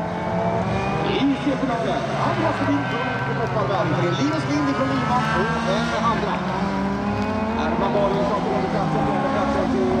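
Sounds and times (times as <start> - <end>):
race car engines running: 0.0 - 10.0.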